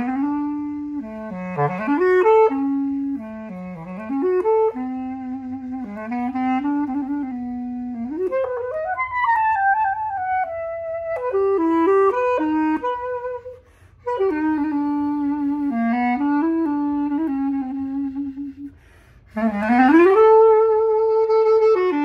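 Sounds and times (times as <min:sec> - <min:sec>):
clarinet playing samba melody: 0:00.0 - 0:22.0.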